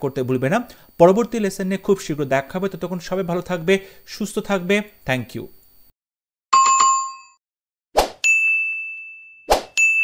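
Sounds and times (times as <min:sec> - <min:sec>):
bright bell-like ding: 0:08.2 - 0:10.0.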